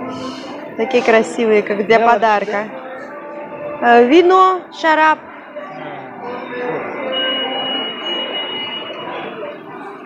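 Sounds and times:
busy supermarket noise: 0.0 - 10.0
high-pitched tone: 5.2 - 10.0.

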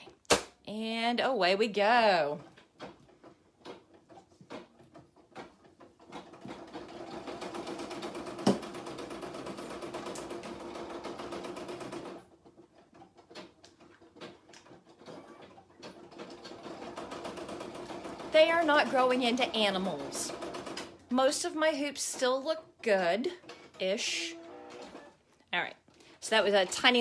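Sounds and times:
embroidery machine stitching: 2.3 - 21.2, 22.0 - 25.2, 26.3 - 27.0.

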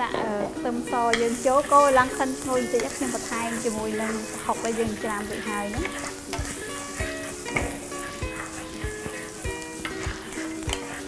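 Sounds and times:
background music with steady beat: 0.0 - 11.0
garlic sizzling in oil: 0.0 - 11.0
wooden spatula stirring in pan: 0.9 - 11.0.

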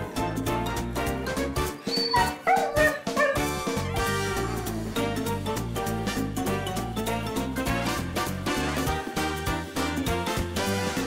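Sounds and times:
upbeat background music: 0.0 - 11.0
husky calling: 1.8 - 3.9.

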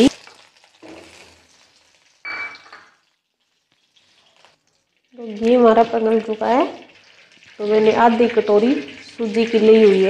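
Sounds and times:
ghee sizzling in hot pan: 0.0 - 10.0
spoon clinking on metal pan: 2.3 - 3.0.

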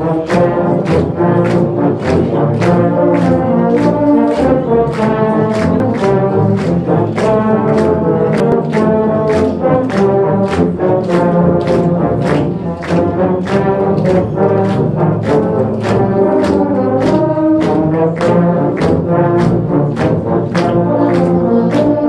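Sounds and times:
audience clapping along: 0.0 - 22.0
low brass band playing a carol: 0.0 - 22.0.

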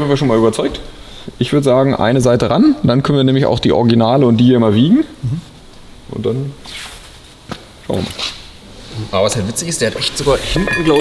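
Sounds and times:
man speaking: 9.0 - 11.0.

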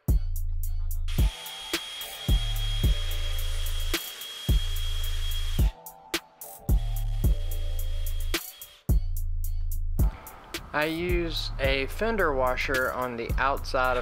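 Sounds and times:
background music with drum beat: 0.0 - 3.2, 5.6 - 14.0
cordless drill whining: 1.1 - 5.8, 7.0 - 8.8.

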